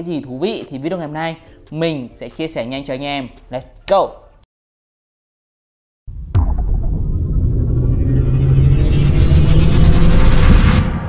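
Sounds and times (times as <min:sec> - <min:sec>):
deep rumble: 0:06.1 - 0:11.0.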